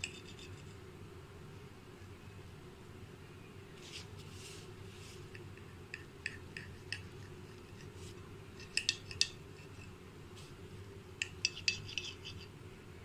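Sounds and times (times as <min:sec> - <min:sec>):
faint low steady hum: 0:00.0 - 0:13.0
knife scraping on glass plate: 0:11.2 - 0:12.5.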